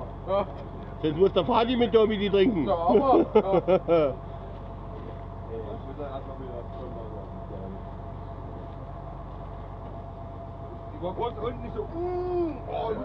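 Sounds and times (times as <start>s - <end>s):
boat engine drone: 0.0s - 13.0s.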